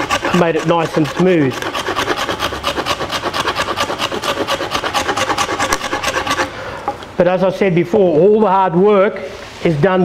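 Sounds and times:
shell scraping bark off log: 0.0 - 6.5.

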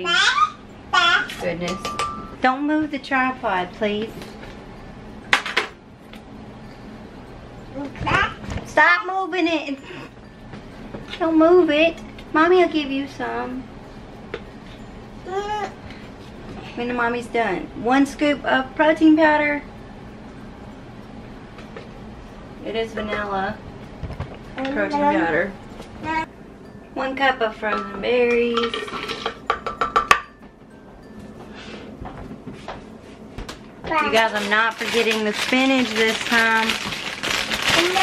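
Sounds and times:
toddler whining: 0.0 - 1.4, 15.2 - 15.9
frozen berries clinking into glass jar: 34.1 - 38.0.

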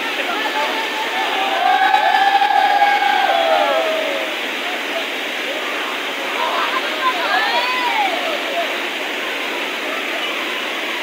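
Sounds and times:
voices shouting a long call: 0.0 - 8.9
water rushing over rocks: 0.0 - 11.0.

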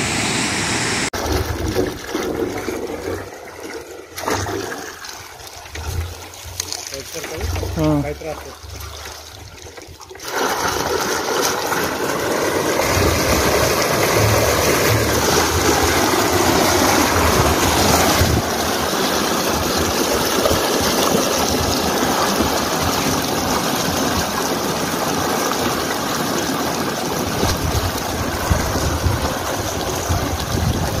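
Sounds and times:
water gushing from pipe: 0.0 - 31.0.

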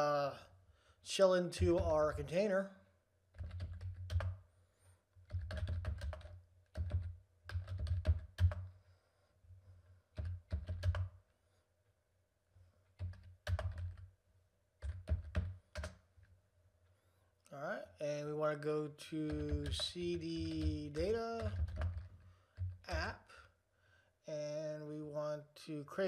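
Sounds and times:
computer keyboard typing: 1.6 - 2.2, 3.3 - 4.4, 5.2 - 8.7, 10.1 - 11.2, 13.0 - 14.1, 14.8 - 16.0, 19.3 - 23.2.

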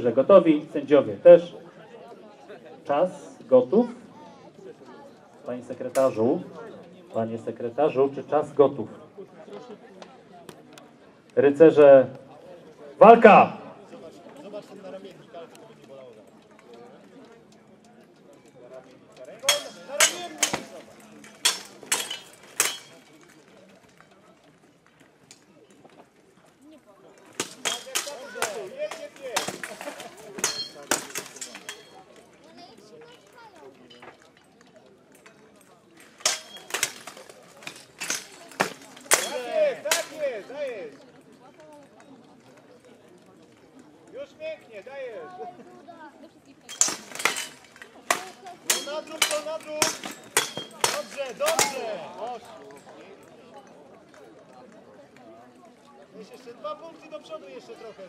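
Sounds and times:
swords clashing on armour: 19.4 - 23.2, 27.3 - 32.1, 36.0 - 40.4, 46.7 - 52.1.

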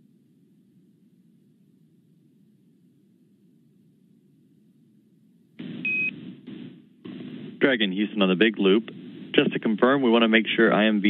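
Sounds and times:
faint low hum: 0.0 - 11.0
radio hiss burst: 5.6 - 11.0.

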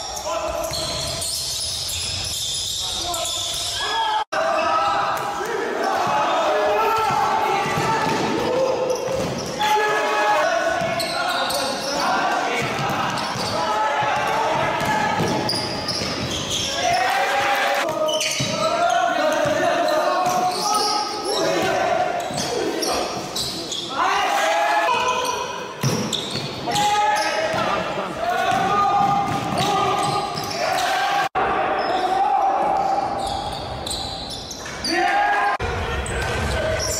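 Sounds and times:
people shouting: 3.8 - 15.6, 16.6 - 23.0, 23.9 - 25.4, 26.6 - 33.2.

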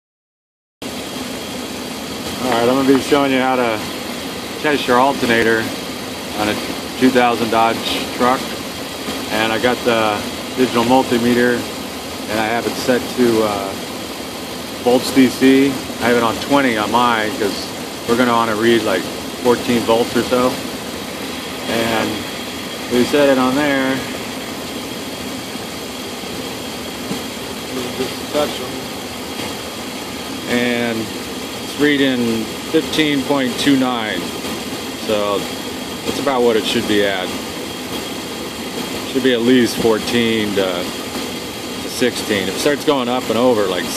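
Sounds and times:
pickup engine idling: 0.9 - 43.9.

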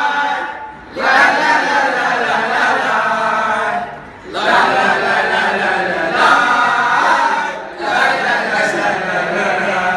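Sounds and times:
boys chanting in unison: 0.0 - 9.9.

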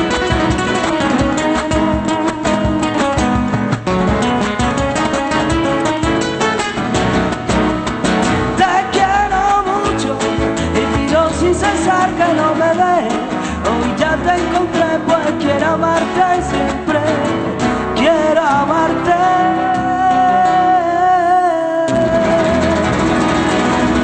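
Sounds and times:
acoustic flamenco guitars: 0.0 - 24.0.

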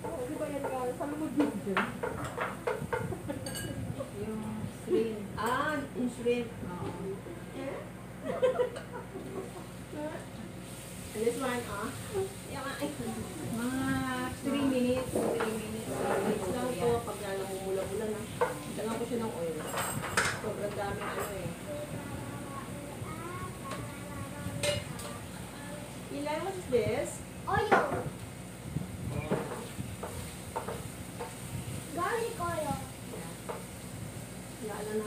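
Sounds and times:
light sizzle: 0.0 - 35.0
shrimp sizzling in a frying pan: 10.6 - 21.8, 29.6 - 35.0.

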